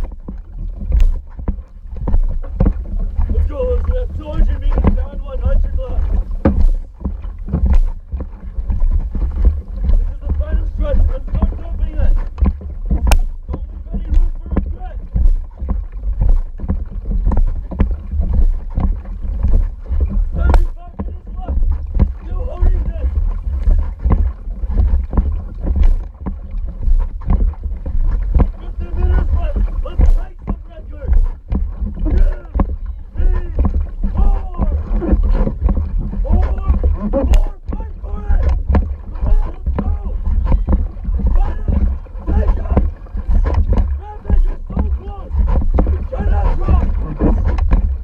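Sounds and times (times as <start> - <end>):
paddle strokes splashing water: 0.0 - 48.0
wind and water rumble: 0.0 - 48.0.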